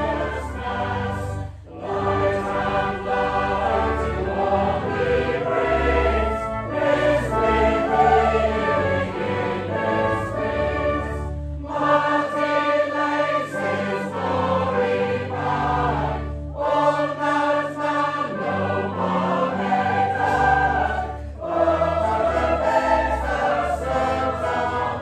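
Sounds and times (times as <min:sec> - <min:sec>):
congregation and choir singing: 0:00.0 - 0:25.0
low instrumental accompaniment: 0:00.0 - 0:25.0.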